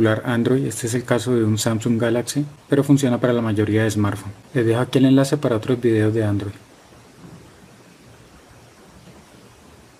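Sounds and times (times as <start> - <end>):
steady hiss: 0.0 - 9.9.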